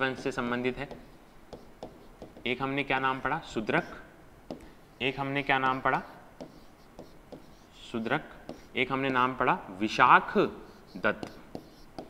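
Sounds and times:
chalk scratching: 0.0 - 9.5, 10.2 - 12.0
chalk tapping on chalkboard: 0.0 - 9.5, 10.5 - 12.0.

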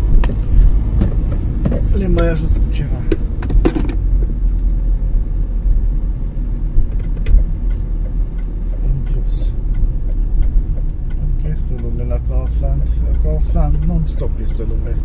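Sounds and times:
car engine and tyres rumbling: 0.0 - 15.0.

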